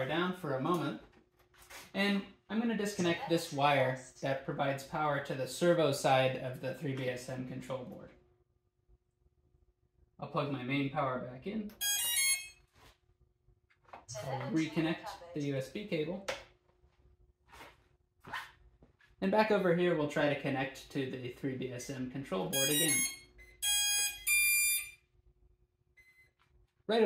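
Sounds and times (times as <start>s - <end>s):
electronic startup beep tones: 22.6s - 24.9s.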